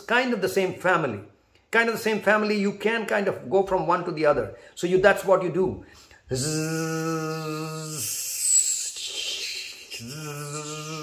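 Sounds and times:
man hissing sss sound: 5.9 - 11.0
man buzzing zzz sound: 6.4 - 11.0.

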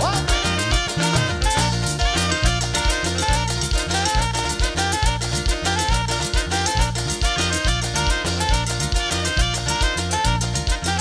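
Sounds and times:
drums and percussion: 0.0 - 11.0
electric bass line: 0.0 - 11.0
live dance band playing: 0.0 - 11.0
sliding melody line: 0.0 - 11.0.

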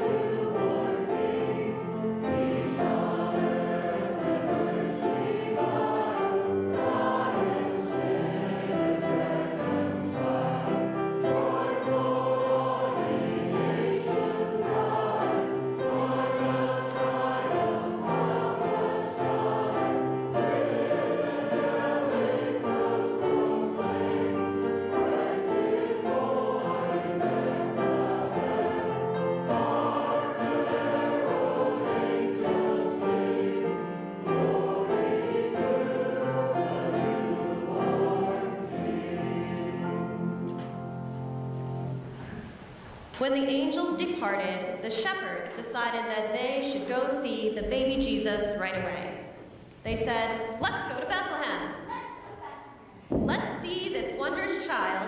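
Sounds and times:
choir singing a hymn: 0.0 - 52.4, 53.1 - 55.0.

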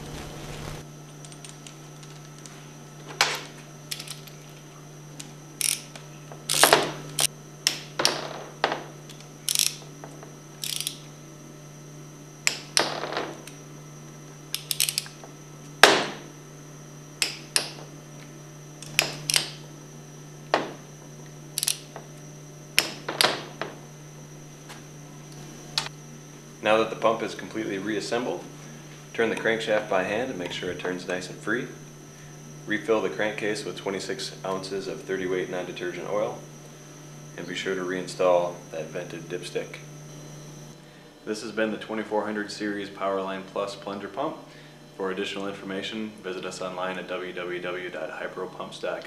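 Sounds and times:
torque wrench clicking: 3.9 - 4.4, 5.6 - 7.9, 9.1 - 9.8, 10.6 - 11.1, 14.5 - 15.2, 18.8 - 19.6, 21.5 - 21.9.

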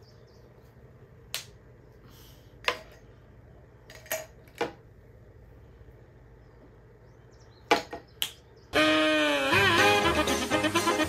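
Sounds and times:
music: 8.8 - 11.0.

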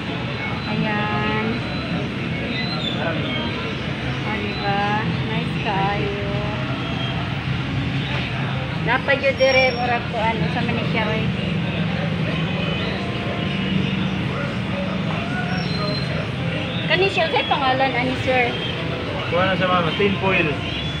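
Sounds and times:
street traffic hum: 0.0 - 21.0
voices talking: 0.0 - 21.0.

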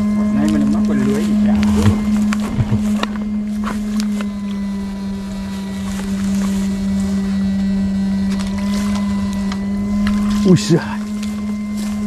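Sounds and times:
inverter humming: 0.0 - 12.0.

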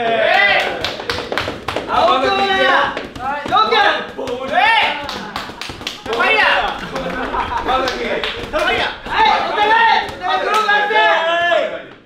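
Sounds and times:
sharp hand claps: 0.3 - 10.8.

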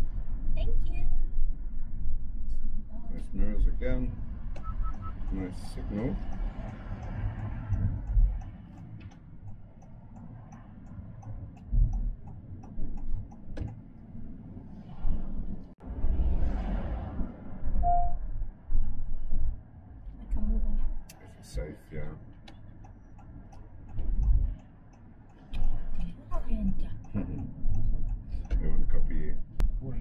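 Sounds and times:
car cabin rumble: 3.4 - 15.8
car turn indicator ticking: 4.6 - 13.8, 22.4 - 28.7.

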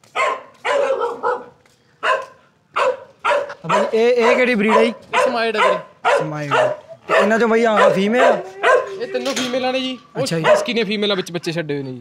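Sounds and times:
dogs barking sharply: 0.0 - 9.1, 10.2 - 10.8.

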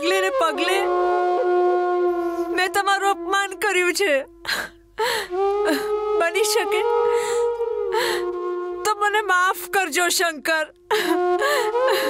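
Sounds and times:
woman speaking with sobs: 0.0 - 0.9, 2.5 - 6.9
held woodwind note: 0.0 - 10.1, 10.8 - 12.0.

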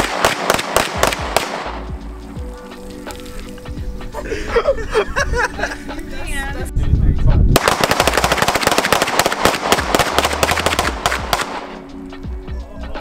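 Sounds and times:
rapid handgun fire: 0.0 - 1.8, 7.6 - 11.8.

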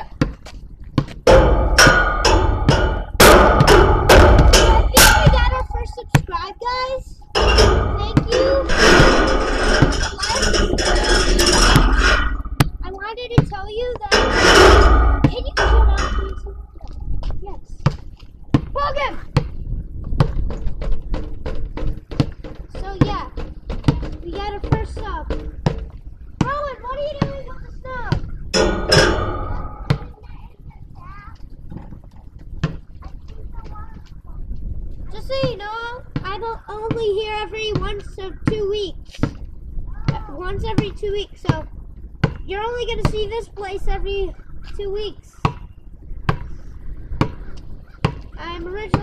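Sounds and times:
basketball bouncing on pavement: 0.0 - 1.4, 12.6 - 14.1, 17.2 - 28.3, 29.8 - 30.2, 31.8 - 32.9, 35.4 - 43.3, 45.4 - 46.6, 47.2 - 49.0
wind buffeting the microphone: 0.0 - 49.0
basketball striking hard: 1.0 - 6.4, 7.4 - 16.6, 21.8 - 30.2, 47.2 - 49.0.

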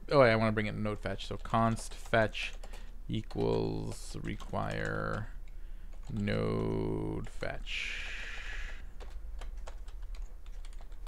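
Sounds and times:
computer keyboard typing: 1.3 - 11.0.

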